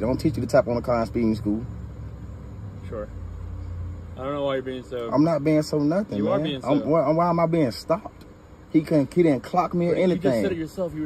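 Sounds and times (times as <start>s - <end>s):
vehicle rumble: 0.0s - 11.0s.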